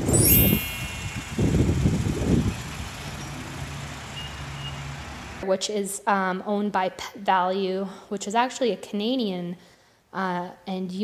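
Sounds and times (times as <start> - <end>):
wind rumbling on microphone: 0.0 - 3.4
low vehicle hum: 0.8 - 5.4.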